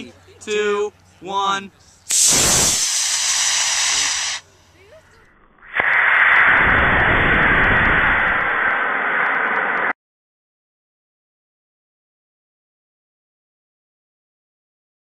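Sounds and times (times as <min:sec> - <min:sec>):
model rocket motor rushing hiss: 0:02.0 - 0:04.5.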